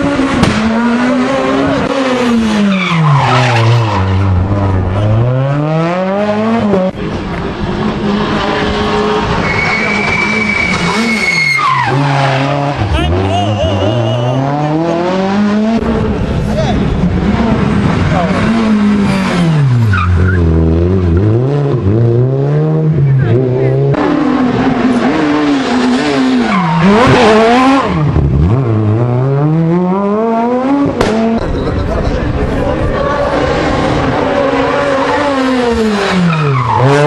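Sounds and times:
rally car engines revving: 0:00.0 - 0:37.0
tyre squeal: 0:09.4 - 0:12.2, 0:12.9 - 0:14.6.

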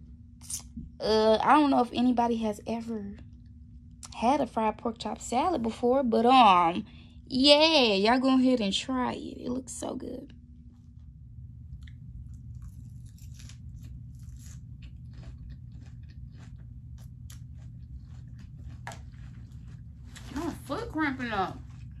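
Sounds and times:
steady low hum: 0:00.0 - 0:22.0
person chewing crunchy salad: 0:10.7 - 0:22.0.

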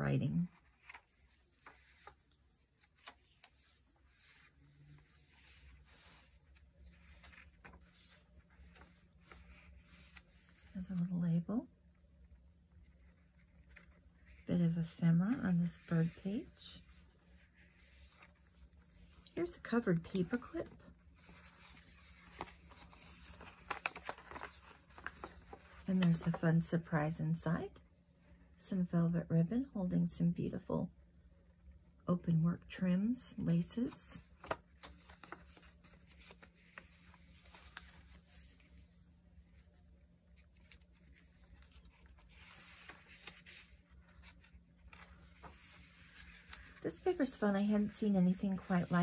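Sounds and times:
paper crinkling and rustling: 0:00.5 - 0:11.0, 0:12.8 - 0:26.5, 0:33.8 - 0:49.0.

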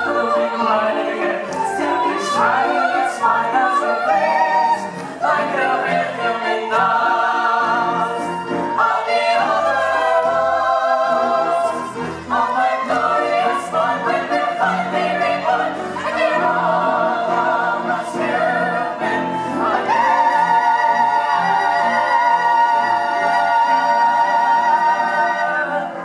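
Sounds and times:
cast singing together: 0:00.0 - 0:26.0
pit orchestra: 0:00.0 - 0:26.0.

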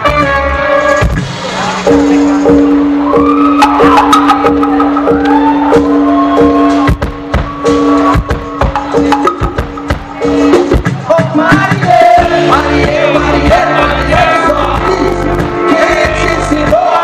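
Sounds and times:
live band playing: 0:00.0 - 0:17.0
percussion hits: 0:00.0 - 0:17.0.

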